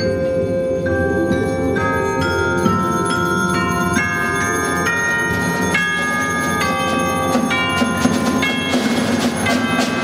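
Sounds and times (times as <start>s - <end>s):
tubular bells melody: 0.0s - 10.0s.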